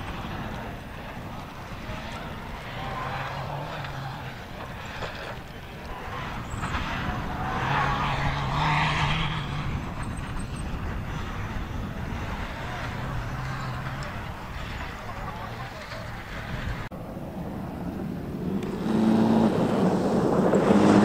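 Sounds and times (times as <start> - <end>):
buggy engine running hard: 0.0 - 21.0.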